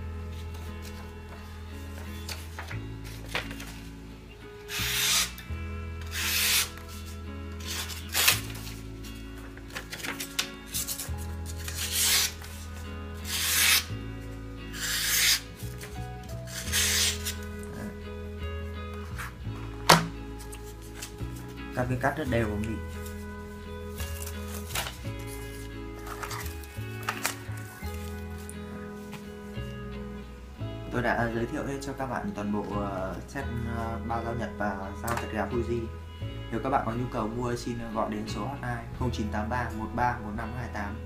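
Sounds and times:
knife slicing through paper: 4.7 - 5.4, 6.1 - 8.8, 9.8 - 13.9, 14.7 - 17.5, 23.9 - 28.5.

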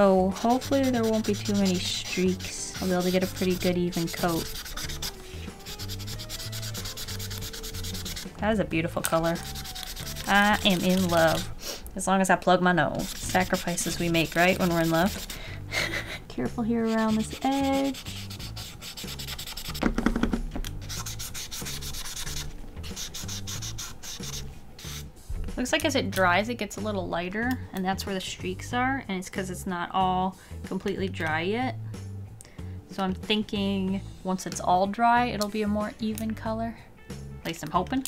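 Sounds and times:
marker rubbing across paper: 0.3 - 8.4, 9.2 - 11.5, 13.0 - 15.4, 16.6 - 19.8, 20.8 - 25.1.

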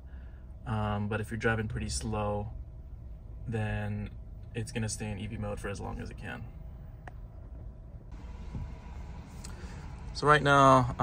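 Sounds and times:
car cabin rumble: 4.0 - 11.0.

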